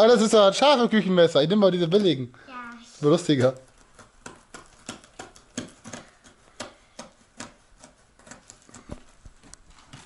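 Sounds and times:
knife cutting tape and cardboard: 3.3 - 10.0.

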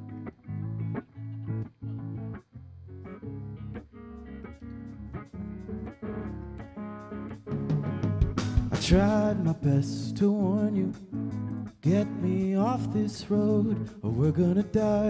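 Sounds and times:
electric guitar riff: 0.0 - 15.0.

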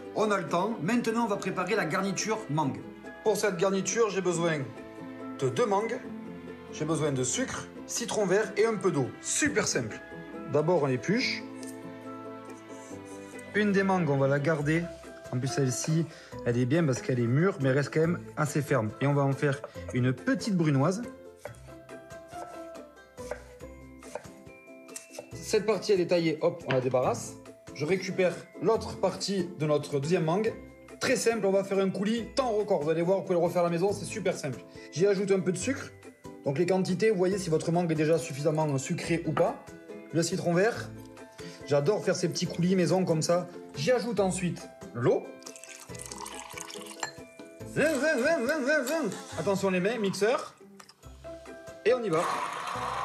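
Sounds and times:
background music: 0.0 - 53.0
knife chopping on wooden board: 21.4 - 25.4
water pouring into a jug: 45.4 - 47.1.

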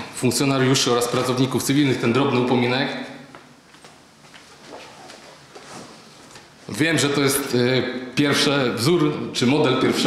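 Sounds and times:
soft rustling: 3.4 - 6.7.

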